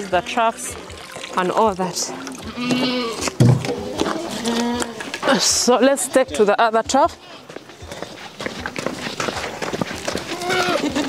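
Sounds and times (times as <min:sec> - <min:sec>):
goats bleating: 0:02.3 - 0:05.3, 0:10.0 - 0:11.0.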